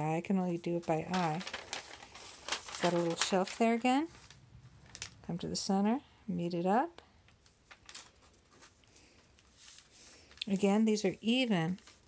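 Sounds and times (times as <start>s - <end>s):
paper rustling and scraping: 0.8s - 5.2s, 7.4s - 12.0s.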